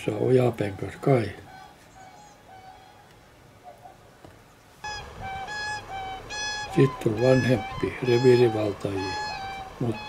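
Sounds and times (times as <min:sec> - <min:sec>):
swans calling: 0:00.8 - 0:04.0, 0:04.8 - 0:10.0.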